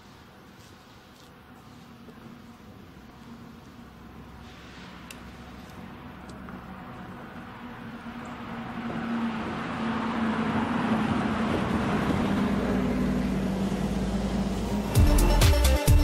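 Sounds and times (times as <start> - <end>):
city bus engine passing: 0.1 - 15.4.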